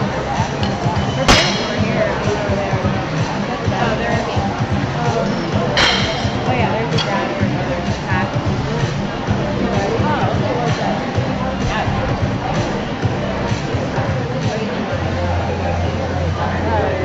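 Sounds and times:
background music: 0:00.0 - 0:17.0
crowd chatter: 0:00.0 - 0:17.0
barbell plates clanking: 0:05.6 - 0:07.5.

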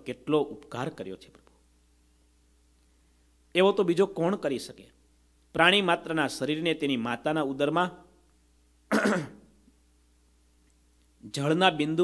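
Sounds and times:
man clearing his throat: 0:08.9 - 0:09.5.

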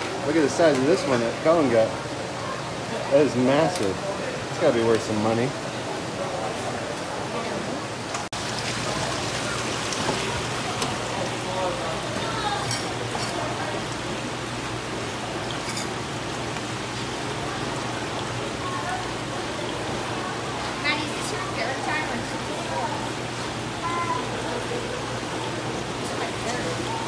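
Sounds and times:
faint voices: 0:00.0 - 0:08.2, 0:16.8 - 0:27.0
water running along a flume: 0:00.0 - 0:27.0.

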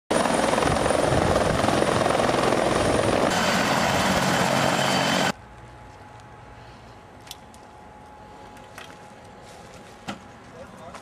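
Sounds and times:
helicopter flying close by: 0:00.1 - 0:05.4.

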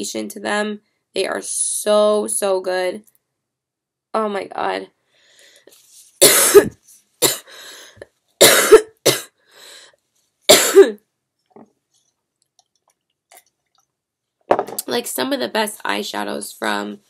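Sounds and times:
woman coughing: 0:06.2 - 0:07.5, 0:08.4 - 0:09.4, 0:10.5 - 0:11.0.

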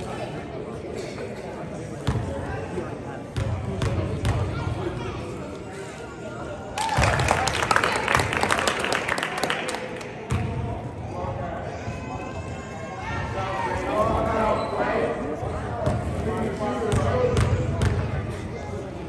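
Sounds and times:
basketball bouncing on court: 0:16.9 - 0:18.1.

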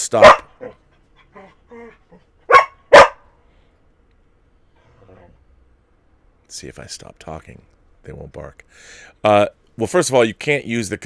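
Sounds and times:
dog barking: 0:00.2 - 0:00.8, 0:02.4 - 0:03.3.

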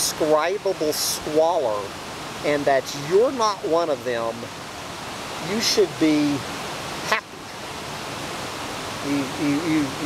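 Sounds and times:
creek water rushing: 0:00.0 - 0:10.0.

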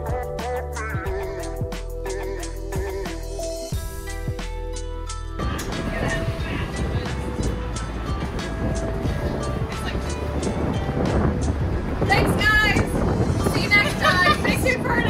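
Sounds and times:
music: 0:00.0 - 0:15.0.

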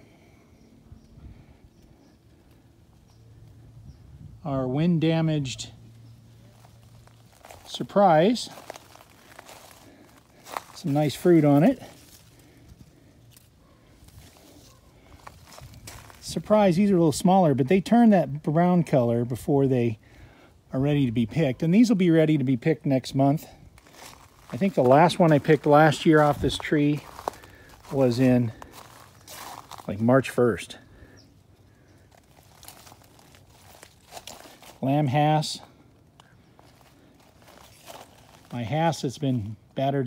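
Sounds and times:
leaves and branches rustling: 0:04.8 - 0:17.3, 0:23.1 - 0:39.9.

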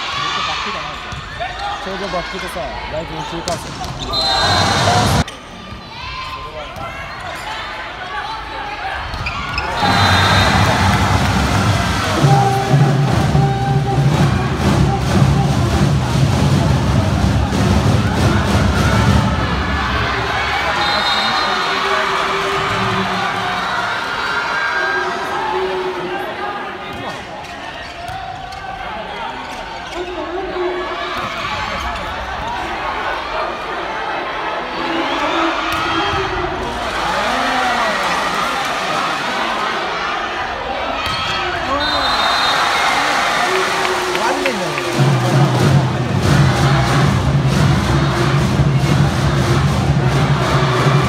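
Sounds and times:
voices echoing in a gym: 0:00.0 - 0:10.9, 0:19.5 - 0:45.1
spectators shouting and chanting: 0:00.0 - 0:51.0.

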